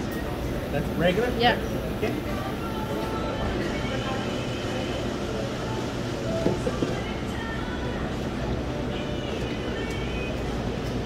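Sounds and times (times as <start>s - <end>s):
faint background music: 0.0s - 11.0s
low rumble of shop floor: 1.5s - 11.0s.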